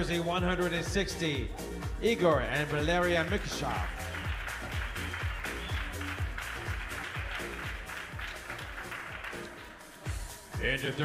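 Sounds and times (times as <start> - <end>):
background music with steady beat: 0.0 - 11.0
audience applause: 3.2 - 10.3.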